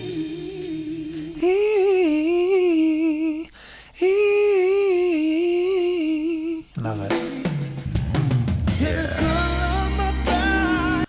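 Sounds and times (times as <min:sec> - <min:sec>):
band with drums and voices: 0:00.0 - 0:01.7, 0:06.8 - 0:11.0
man singing long held notes: 0:00.0 - 0:07.3, 0:08.7 - 0:11.0.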